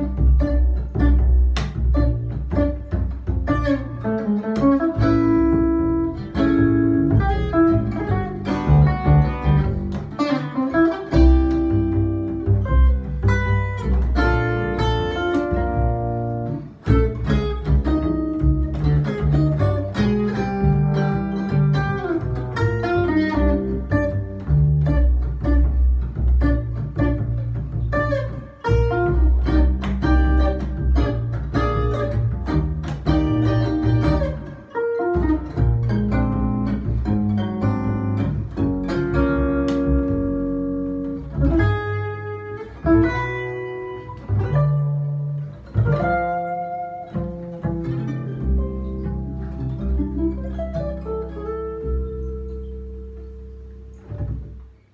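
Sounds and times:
double bass plucked: 0:00.0 - 0:54.9
jazz guitar playing: 0:00.0 - 0:54.9.

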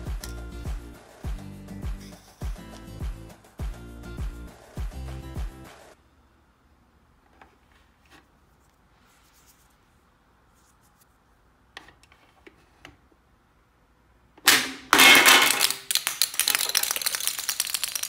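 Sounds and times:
plastic figure clattering on tiles: 0:14.5 - 0:18.0.

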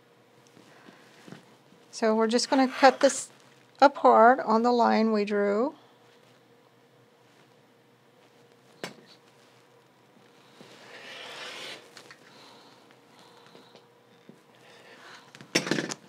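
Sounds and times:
rotary cutter cutting fabric: 0:02.3 - 0:03.3, 0:10.8 - 0:11.9.

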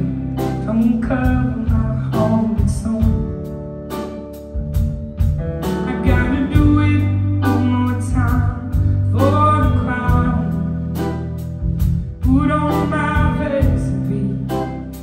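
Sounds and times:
woman singing: 0:00.0 - 0:03.5, 0:05.9 - 0:10.9, 0:12.2 - 0:15.0
bass notes: 0:00.0 - 0:15.0
guitar: 0:00.0 - 0:15.0.

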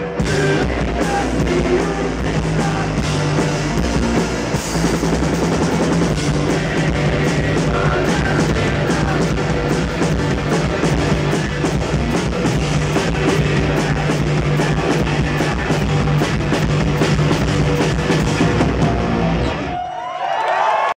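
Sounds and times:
punk rock band playing live: 0:00.0 - 0:19.8
crowd whooping: 0:18.1 - 0:21.0.

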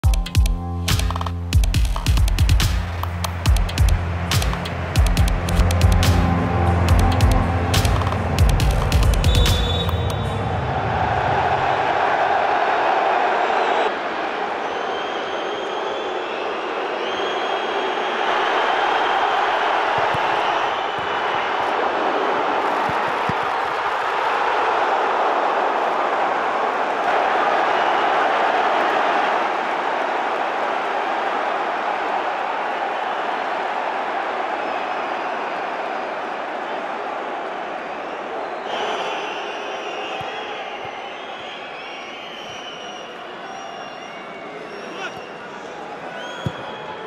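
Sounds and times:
intro music: 0:00.0 - 0:11.6
stadium crowd roar: 0:02.2 - 0:47.0.

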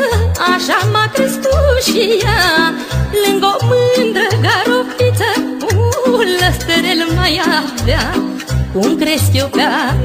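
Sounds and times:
folk music instrumental: 0:00.0 - 0:10.0.

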